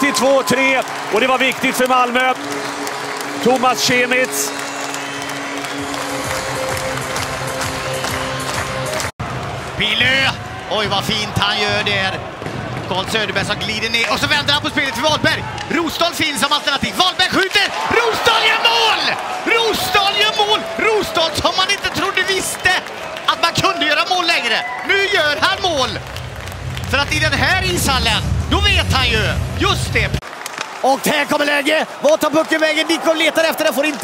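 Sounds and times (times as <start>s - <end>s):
man excitedly commentating: 0.0s - 2.4s, 12.9s - 26.0s, 26.9s - 30.2s, 30.8s - 34.0s
goal music in arena: 0.0s - 17.0s, 24.7s - 30.8s
crowd cheering and applause: 0.0s - 34.0s.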